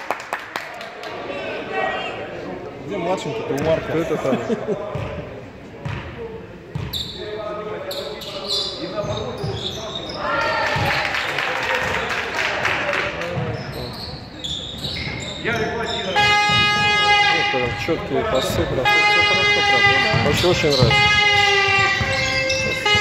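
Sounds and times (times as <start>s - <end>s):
basketball bouncing on wooden court: 6.7s - 7.0s, 16.3s - 17.2s, 19.8s - 23.0s
steady pitched buzzer: 16.1s - 23.0s.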